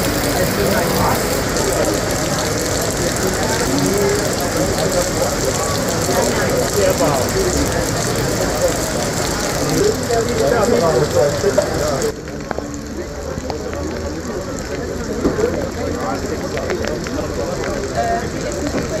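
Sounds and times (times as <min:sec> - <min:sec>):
heavy rain on pavement: 0:00.0 - 0:19.0
sharp water drips: 0:00.0 - 0:19.0.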